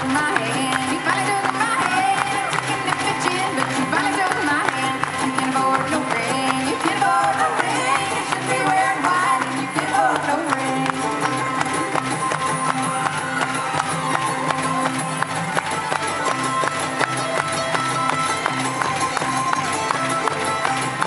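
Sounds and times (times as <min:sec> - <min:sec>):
bluegrass band playing: 0:00.0 - 0:21.0
fiddle: 0:00.0 - 0:21.0.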